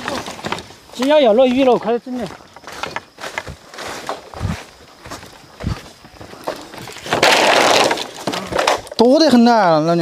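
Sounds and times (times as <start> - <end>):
bamboo branches rustling and crackling: 0.0 - 10.0.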